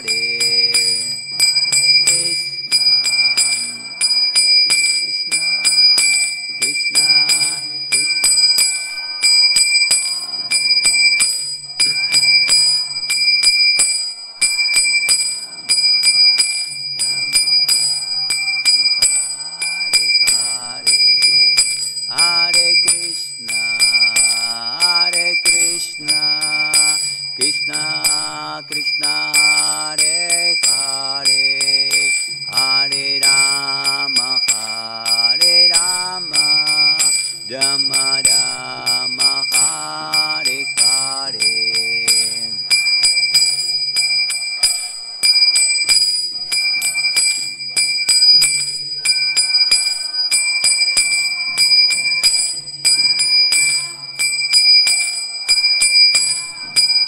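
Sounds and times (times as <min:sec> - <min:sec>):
hand cymbals ringing: 0:00.0 - 0:57.0
man singing a chant: 0:00.0 - 0:57.0.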